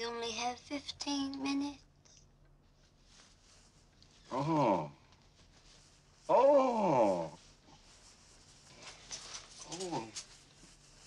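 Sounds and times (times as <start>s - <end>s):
clothing rustling: 2.6s - 4.3s, 5.1s - 6.4s, 7.0s - 11.0s
woman moaning oh: 6.3s - 7.4s.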